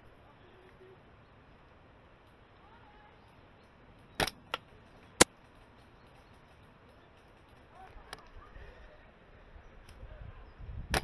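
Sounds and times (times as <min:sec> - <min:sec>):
airsoft rifle clacks: 0:04.2 - 0:08.4.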